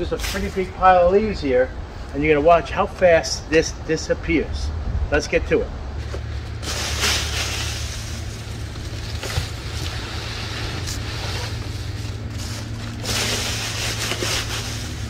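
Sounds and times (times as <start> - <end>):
dry leaves rustling and crackling: 0.0 - 1.1, 6.0 - 15.0
steady low hum: 0.0 - 15.0.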